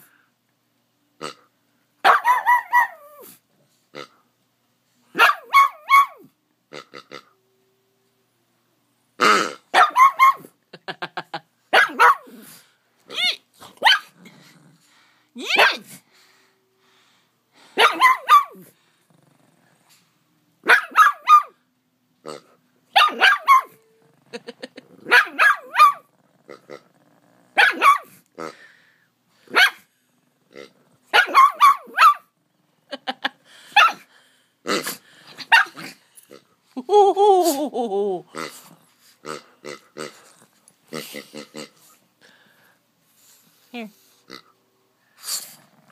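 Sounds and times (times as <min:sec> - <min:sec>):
dog barking sharply: 0:02.0 - 0:03.0, 0:05.2 - 0:06.2, 0:09.8 - 0:10.5, 0:11.7 - 0:12.3, 0:13.8 - 0:14.1, 0:17.8 - 0:18.6, 0:20.6 - 0:21.6, 0:23.0 - 0:23.7, 0:25.1 - 0:26.0, 0:27.6 - 0:28.1, 0:29.5 - 0:29.8, 0:31.1 - 0:32.2, 0:33.8 - 0:34.0, 0:35.4 - 0:35.8.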